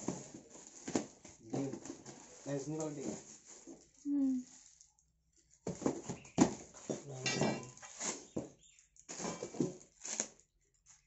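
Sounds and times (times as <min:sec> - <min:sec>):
plastic rustling: 0:00.0 - 0:11.0.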